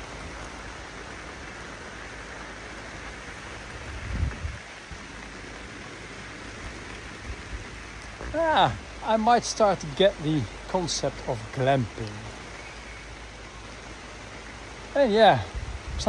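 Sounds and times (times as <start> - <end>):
heavy rain: 0.0 - 16.0.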